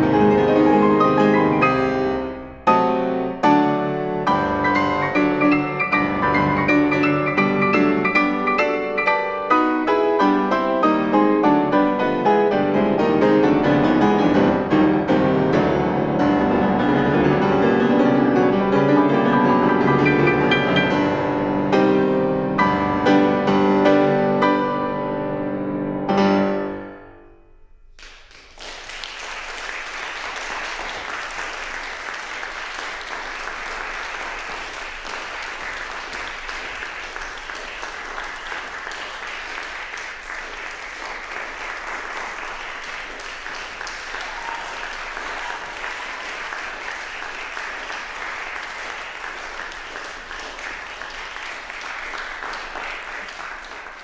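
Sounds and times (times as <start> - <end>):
audience applauding: 4.6 - 9.9, 28.0 - 54.0.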